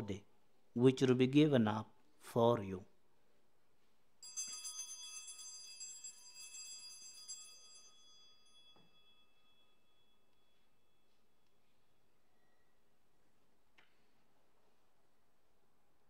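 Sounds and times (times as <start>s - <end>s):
altar bells jangling: 4.2s - 12.0s.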